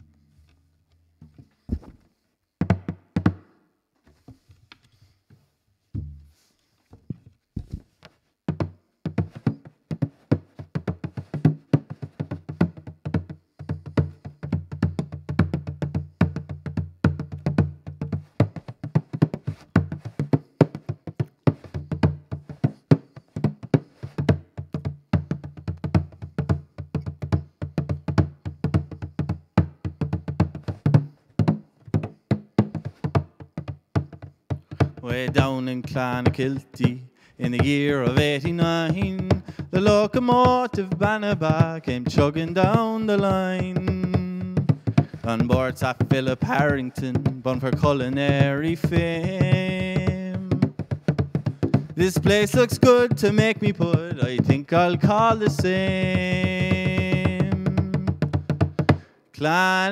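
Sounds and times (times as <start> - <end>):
frame drum beaten with a stick: 6.0 - 6.4, 8.5 - 59.6.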